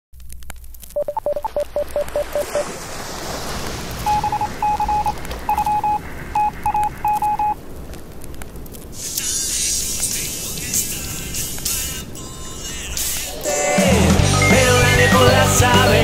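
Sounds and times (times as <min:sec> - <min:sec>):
short electronic beeps: 0:01.0 - 0:02.6, 0:04.1 - 0:07.6
steady hiss: 0:02.2 - 0:14.1.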